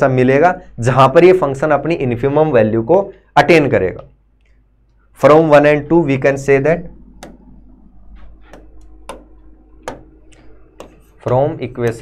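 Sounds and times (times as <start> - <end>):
low steady hum: 0.0 - 12.0
pen clicking and tapping: 8.4 - 12.0.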